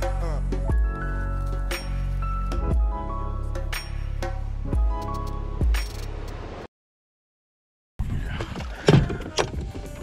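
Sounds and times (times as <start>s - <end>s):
outdoor noise on boat deck: 8.0s - 10.0s.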